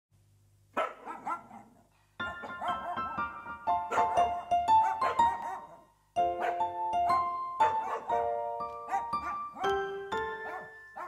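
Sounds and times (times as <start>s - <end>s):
dog barking: 0.8s - 3.2s, 3.9s - 5.8s, 6.4s - 6.7s, 7.6s - 8.3s, 8.9s - 9.8s, 10.4s - 11.0s.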